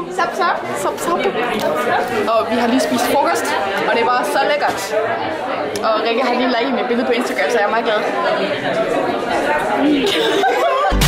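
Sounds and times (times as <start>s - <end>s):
chatter of a busy hall: 0.0s - 11.0s
people talking over one another: 0.0s - 11.0s.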